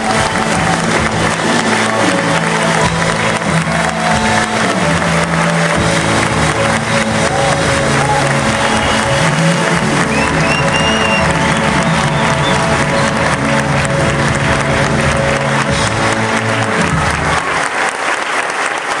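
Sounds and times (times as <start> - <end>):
loud music: 0.0 - 18.2
audience applauding: 0.0 - 19.0.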